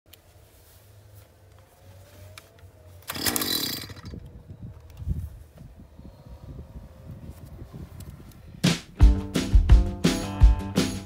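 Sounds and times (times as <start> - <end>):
small two-stroke engine firing: 3.0 - 4.4.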